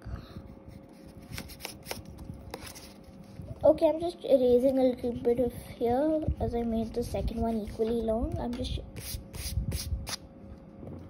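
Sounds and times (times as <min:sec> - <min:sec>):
eraser rubbing on paper: 0:09.0 - 0:09.9.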